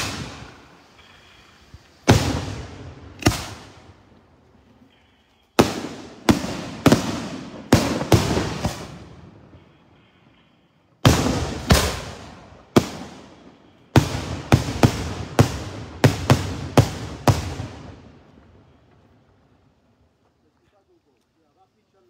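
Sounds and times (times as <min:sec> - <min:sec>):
fireworks bangs with echo: 0:00.0 - 0:04.1, 0:05.6 - 0:09.9, 0:11.0 - 0:19.1.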